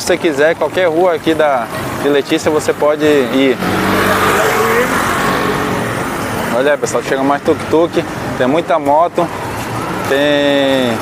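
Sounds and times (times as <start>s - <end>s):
street traffic engine drone: 0.0s - 11.0s
small motorbike close by: 1.7s - 7.4s.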